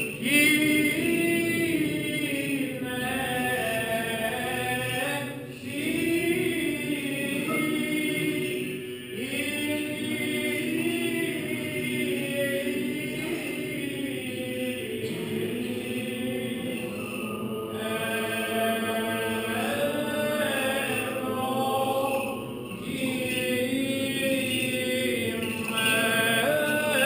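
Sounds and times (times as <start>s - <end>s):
voices chanting melodic lines: 0.0s - 27.0s.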